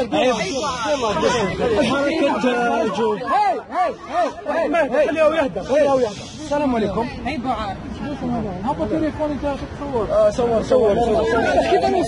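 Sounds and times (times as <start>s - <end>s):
crowd voices talking: 0.0s - 12.0s
short hissing noise: 5.6s - 6.7s.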